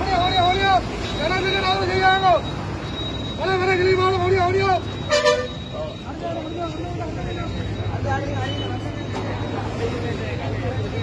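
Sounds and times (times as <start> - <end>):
vehicle horn toot: 5.0 - 5.9
people talking: 5.6 - 11.0.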